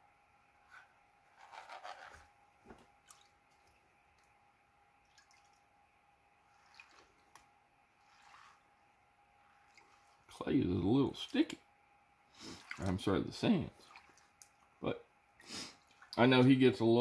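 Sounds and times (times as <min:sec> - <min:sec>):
water drips and small splashes: 0:02.7 - 0:04.4, 0:05.0 - 0:05.7, 0:06.5 - 0:08.7, 0:09.5 - 0:10.3, 0:12.5 - 0:14.8, 0:15.7 - 0:16.4
water sloshing in a pan: 0:05.0 - 0:05.7, 0:06.4 - 0:08.8, 0:09.4 - 0:10.4, 0:12.4 - 0:14.8, 0:15.6 - 0:16.4.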